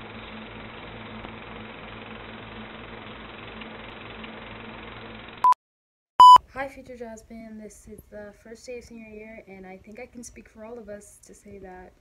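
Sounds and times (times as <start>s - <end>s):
film projector whirring and rattling: 0.0s - 5.4s
short high beep: 6.2s - 6.4s.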